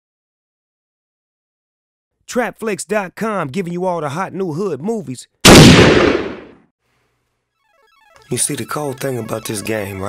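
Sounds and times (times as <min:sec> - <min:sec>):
loud bang sound effect: 0:05.5 - 0:06.6.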